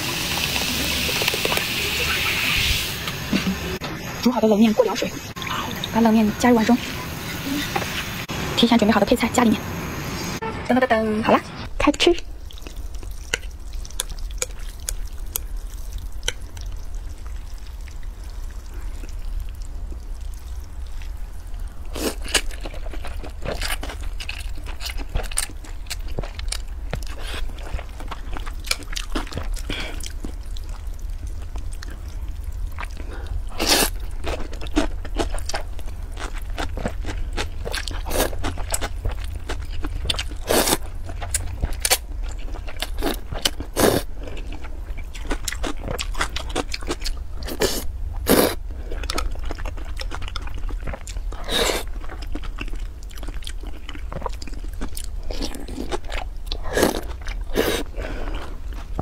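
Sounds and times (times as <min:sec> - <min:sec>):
crunchy chewing: 0:12.5 - 0:59.0.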